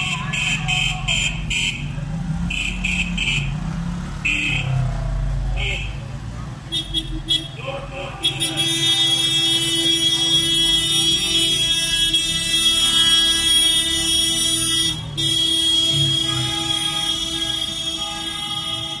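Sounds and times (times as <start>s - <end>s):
engines and tyres rumbling: 0.0s - 19.0s.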